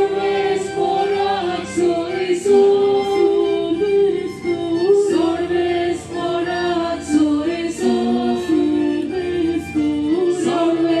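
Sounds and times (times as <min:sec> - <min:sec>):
voices singing a slow hymn: 0:00.0 - 0:11.0.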